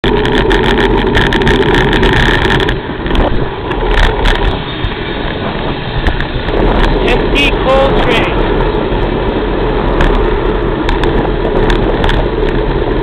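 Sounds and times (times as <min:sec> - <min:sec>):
car wind and road noise: 0:00.0 - 0:13.0
rapid crackles: 0:00.0 - 0:13.0.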